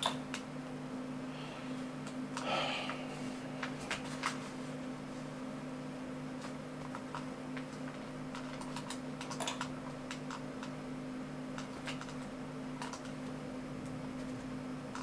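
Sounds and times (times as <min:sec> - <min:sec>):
low electrical hum: 0:00.0 - 0:15.0.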